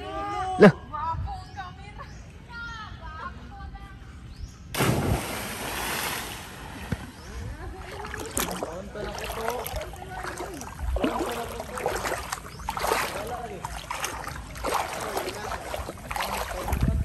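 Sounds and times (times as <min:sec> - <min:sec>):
big splash into river: 0:04.7 - 0:07.2
voices calling out: 0:06.9 - 0:17.0.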